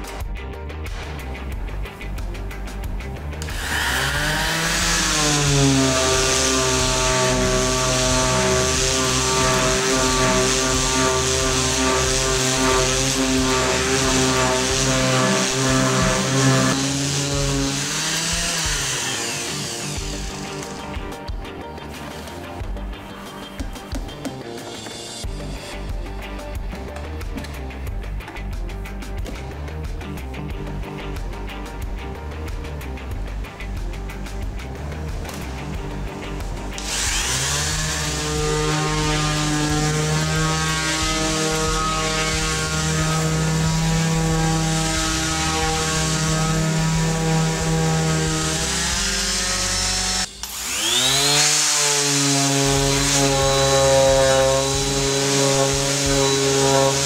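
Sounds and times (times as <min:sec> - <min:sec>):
background music: 0:00.0 - 0:57.0
orbital sander motor: 0:03.4 - 0:21.4, 0:33.8 - 0:57.0.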